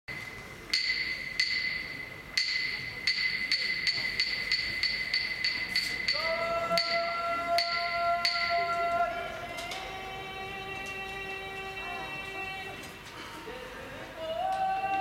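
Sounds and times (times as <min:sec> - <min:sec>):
person singing drawn-out call: 0:06.1 - 0:15.0.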